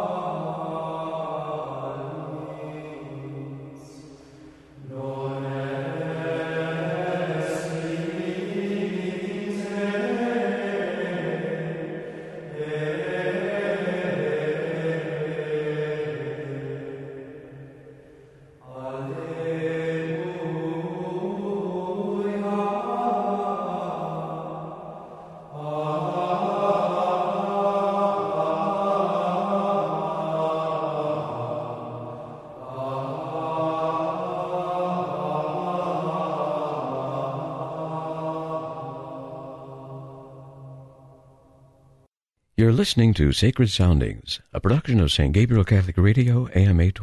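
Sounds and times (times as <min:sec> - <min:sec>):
men's choir singing plainchant: 0:05.0 - 0:17.1, 0:25.6 - 0:40.0.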